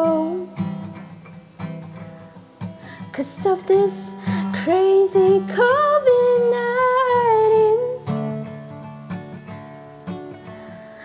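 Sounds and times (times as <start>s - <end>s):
soft acoustic guitar: 0.0s - 11.0s.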